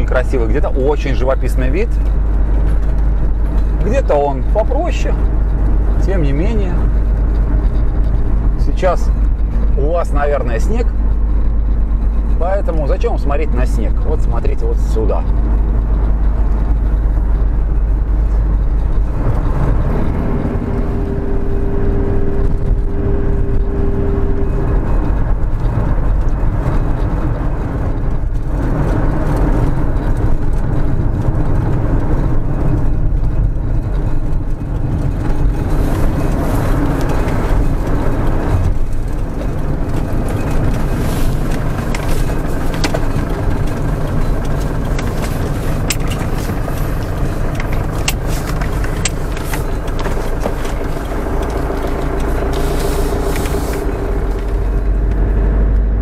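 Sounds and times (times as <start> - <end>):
light clicks and rattles: 0.0 - 21.2, 24.7 - 55.2
engine and road rumble: 0.0 - 56.0.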